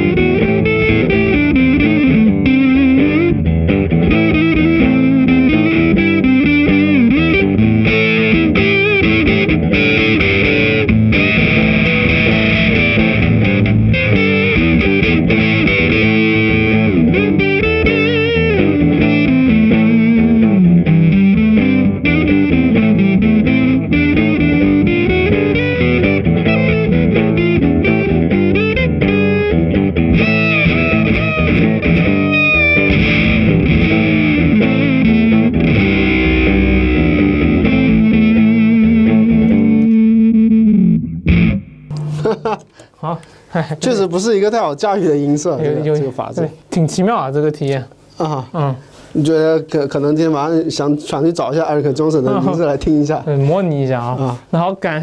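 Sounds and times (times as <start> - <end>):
fuzz-distorted electric guitar: 0.0 - 42.3.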